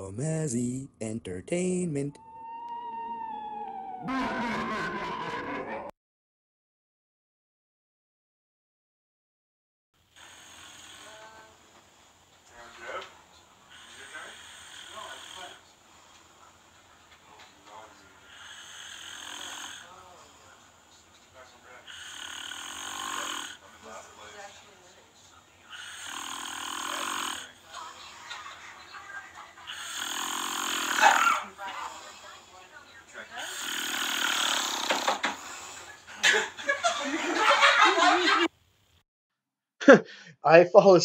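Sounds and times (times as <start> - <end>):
man snoring: 10.2 - 11.4, 13.7 - 15.6, 18.2 - 20.0, 21.8 - 23.6, 25.7 - 27.6, 29.7 - 32.5, 33.3 - 35.9.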